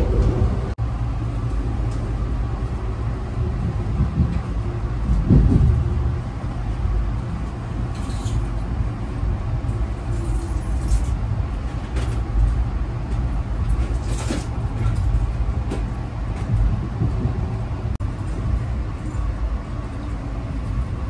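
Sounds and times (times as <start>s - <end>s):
train wheels rumbling on track: 0.0s - 21.0s
train wheel clacks: 3.3s - 6.2s.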